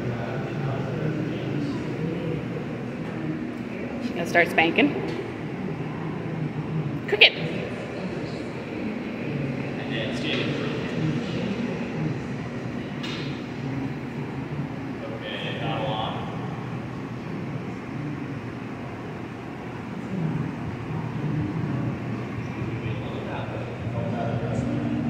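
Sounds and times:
gas furnaces rushing: 0.0s - 25.0s.

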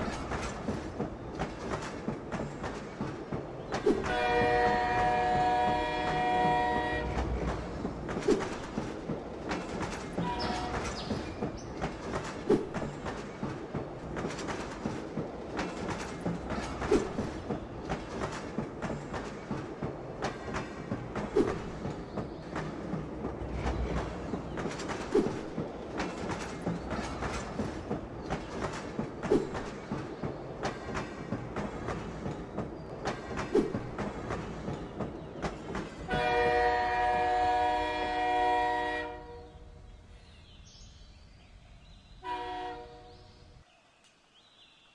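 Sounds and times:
wheels clicking over rail joints: 0.0s - 39.2s
loud train clack: 0.0s - 39.5s
freight train wheels rumbling: 0.0s - 43.6s.

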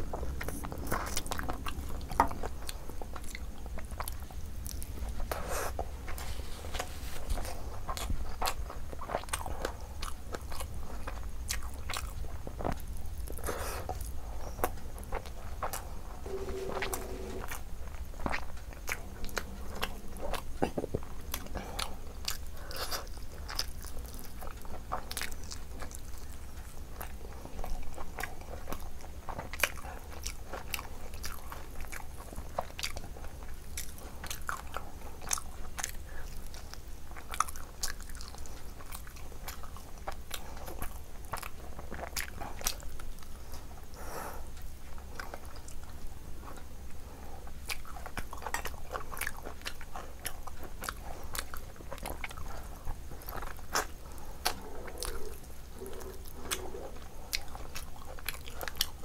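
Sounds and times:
low hum: 0.0s - 7.8s, 16.0s - 22.6s
person chewing: 0.1s - 44.0s, 45.0s - 59.0s.

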